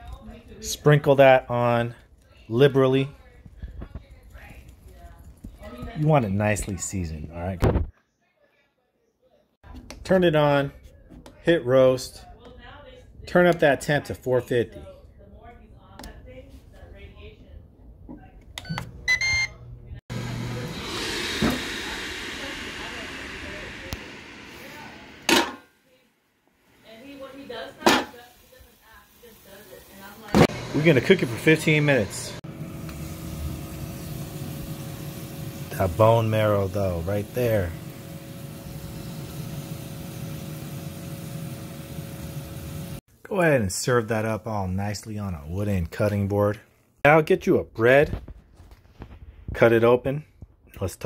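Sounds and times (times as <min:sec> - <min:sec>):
control panel beeping: 0:18.6 - 0:19.6
grill fan rushing hiss: 0:20.1 - 0:25.3, 0:28.8 - 0:43.0.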